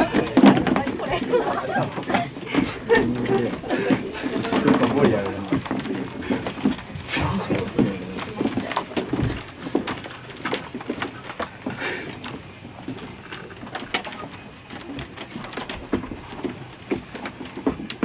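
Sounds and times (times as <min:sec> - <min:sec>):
scattered clicks and knocks: 0:00.0 - 0:18.0.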